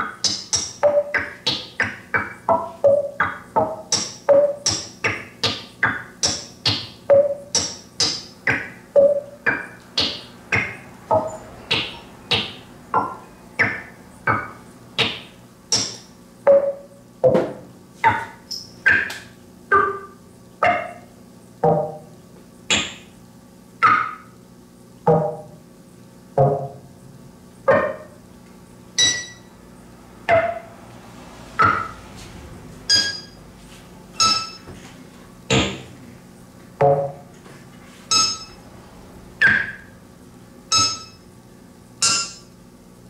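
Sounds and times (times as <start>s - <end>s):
percussive synthesizer notes: 0.0s - 23.0s, 25.0s - 25.6s, 26.3s - 26.9s, 36.8s - 37.3s.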